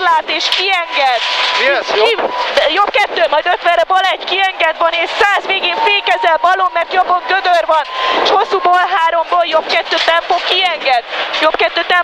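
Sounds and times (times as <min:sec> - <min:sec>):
person reading rapidly: 0:00.0 - 0:12.0
short bursts of noise: 0:00.1 - 0:11.7.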